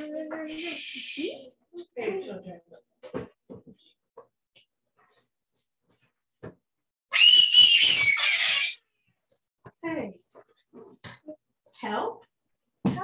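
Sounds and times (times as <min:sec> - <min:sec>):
child screaming: 0:07.1 - 0:08.8.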